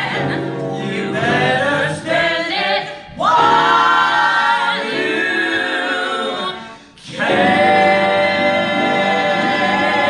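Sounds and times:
mixed choir singing in harmony: 0:00.0 - 0:10.0.

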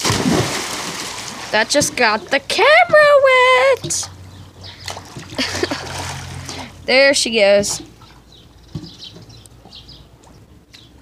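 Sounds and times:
pool water settling: 0:00.0 - 0:06.8.

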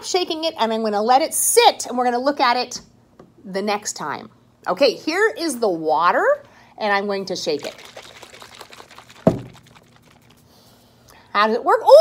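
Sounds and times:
water sloshing in shaken bottle: 0:07.3 - 0:10.5
thump: 0:09.2 - 0:09.6.

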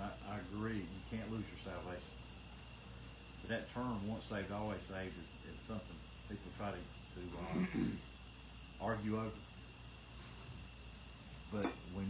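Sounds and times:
man speaking: 0:00.0 - 0:02.1, 0:03.4 - 0:07.9, 0:08.8 - 0:09.4, 0:11.5 - 0:12.0
steady high-pitched whine: 0:00.0 - 0:12.0.

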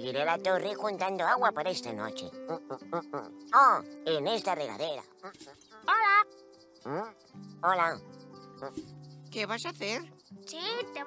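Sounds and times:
person speaking: 0:00.0 - 0:11.0
soft background music: 0:00.0 - 0:11.0.

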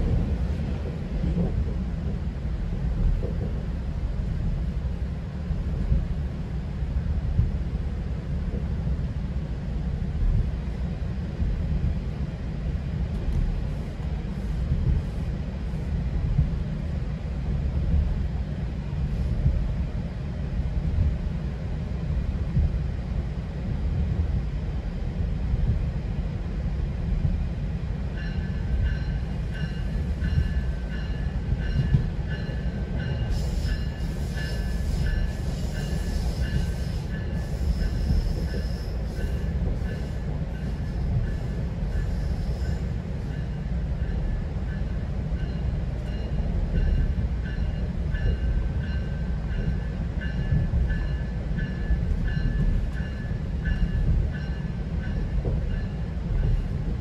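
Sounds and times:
wheels rumbling on track: 0:00.0 - 0:57.0.

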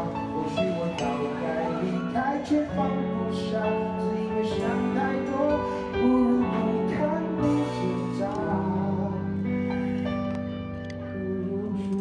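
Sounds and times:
person singing: 0:00.0 - 0:12.0
pop song backing track: 0:00.0 - 0:12.0.

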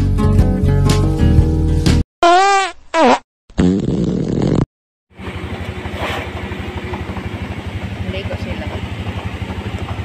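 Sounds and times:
vehicle engine idling: 0:05.1 - 0:10.0.

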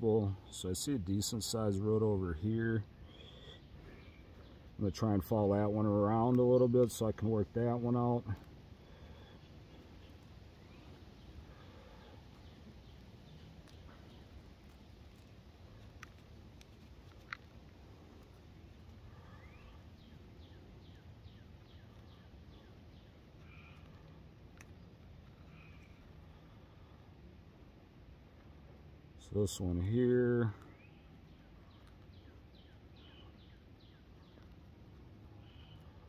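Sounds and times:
distant birds chirping: 0:00.0 - 0:36.0.

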